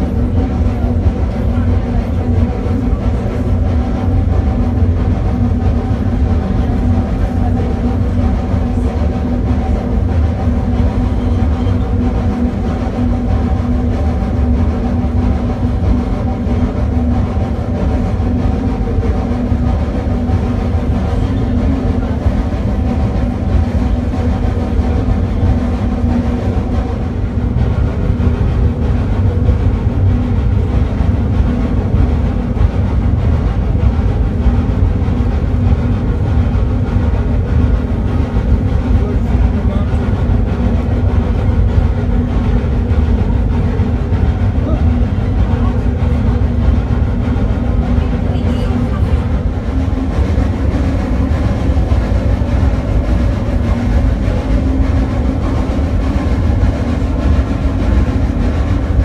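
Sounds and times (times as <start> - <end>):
steam locomotive rumble with droning: 0.0 - 59.0.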